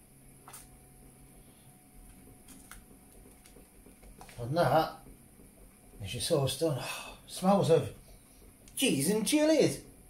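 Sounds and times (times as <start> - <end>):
wooden spoon stirring thick sauce: 2.0 - 10.0.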